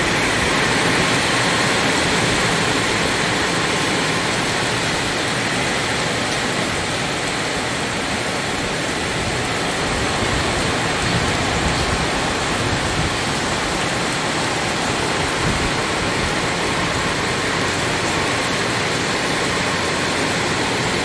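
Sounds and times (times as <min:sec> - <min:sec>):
heavy rain: 0:00.0 - 0:21.0.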